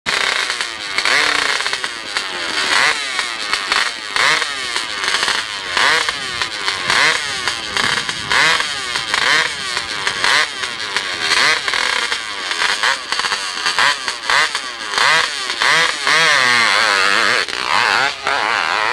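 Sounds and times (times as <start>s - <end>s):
dirt bike engine revving: 0.1s - 18.9s.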